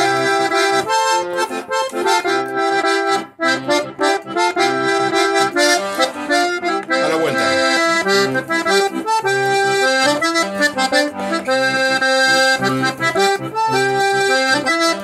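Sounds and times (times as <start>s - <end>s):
button accordion playing chords: 0.0s - 15.0s.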